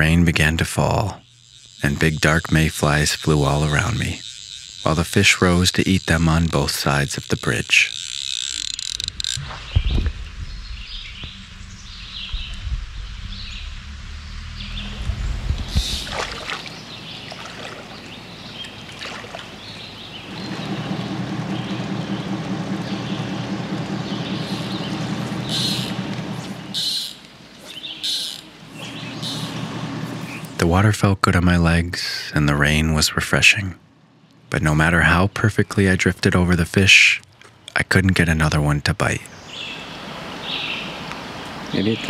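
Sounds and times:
steady noise: 0.0s - 37.2s
low rumble: 9.1s - 18.9s, 19.5s - 26.8s, 28.5s - 31.9s
bird calls: 14.5s - 30.7s, 39.2s - 42.0s
stream running water: 15.6s - 21.1s
light rain: 39.7s - 41.9s.

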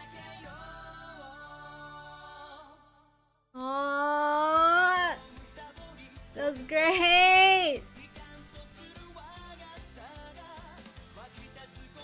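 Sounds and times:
pop song music: 0.0s - 12.0s.

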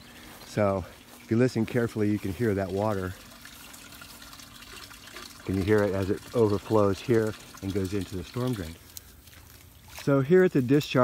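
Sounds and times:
water trickling into drain: 0.0s - 9.9s.

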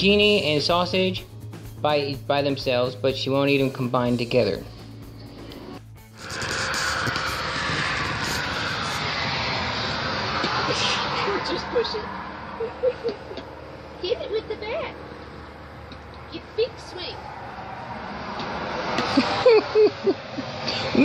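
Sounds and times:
vehicle passing by: 4.6s - 21.0s.

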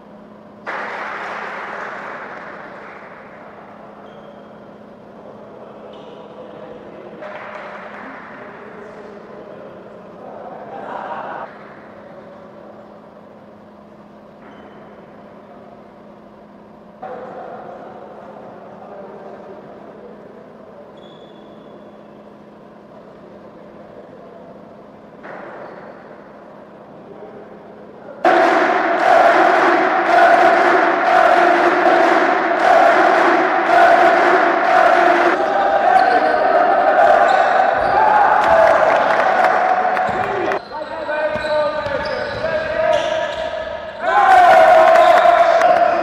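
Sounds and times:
people clapping in unison: 0.6s - 3.5s, 7.2s - 8.6s, 38.4s - 40.6s, 44.8s - 46.0s
hall murmur: 28.2s - 40.6s
people shouting and cheering: 28.2s - 41.3s, 42.5s - 46.0s.

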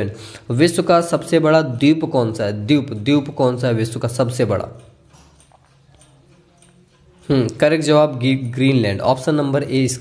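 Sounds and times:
soft clicks: 4.6s - 7.3s.

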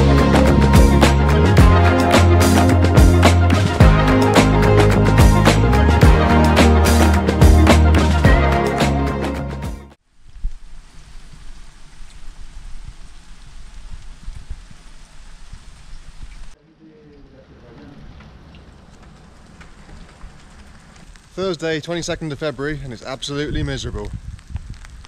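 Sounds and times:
music: 0.0s - 10.0s
rain falling steadily: 10.0s - 25.0s.

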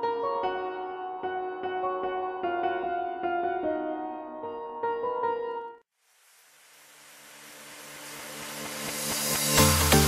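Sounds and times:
electronic dance track: 7.6s - 10.0s.

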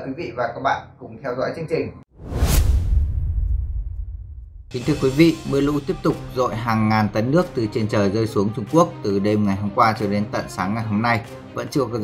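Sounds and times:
swoosh with deep boom: 2.2s - 5.0s.

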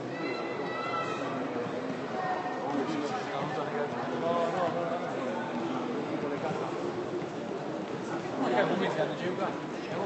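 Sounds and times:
crowd murmur: 0.0s - 10.0s
people talking close: 0.0s - 10.0s.

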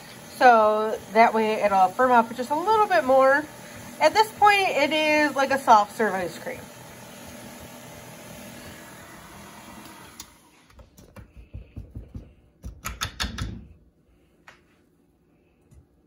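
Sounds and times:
stand mixer running: 0.0s - 10.7s.

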